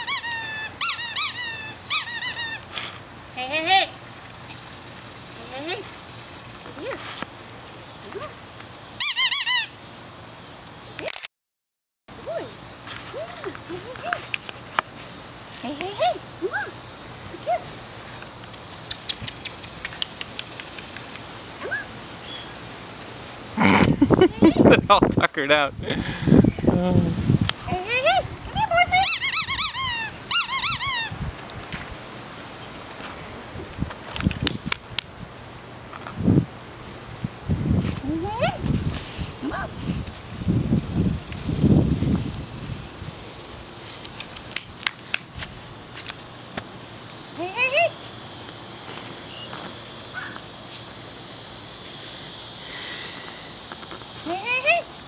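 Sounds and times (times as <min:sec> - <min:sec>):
sharp high-pitched squeaks: 0:00.0 - 0:02.7, 0:09.0 - 0:09.7, 0:29.0 - 0:31.2.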